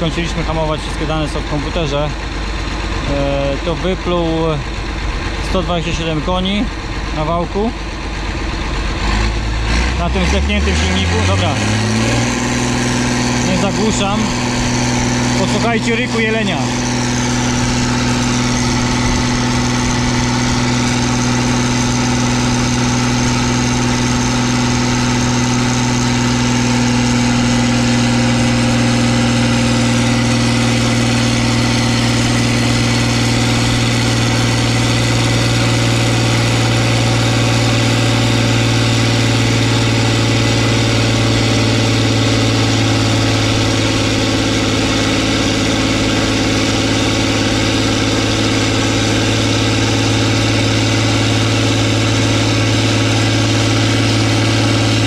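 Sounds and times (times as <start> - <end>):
diesel engine roaring at high revs: 0.0 - 55.0.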